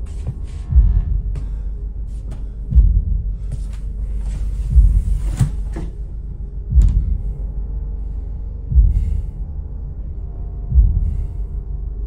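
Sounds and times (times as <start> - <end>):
deep low thuds: 0.0 - 11.6
low hum: 0.0 - 12.0.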